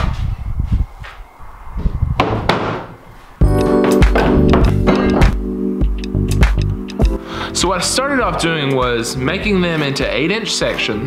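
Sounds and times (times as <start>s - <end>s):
wooden board knocking and thudding: 2.2s - 3.0s
background music: 3.4s - 11.0s.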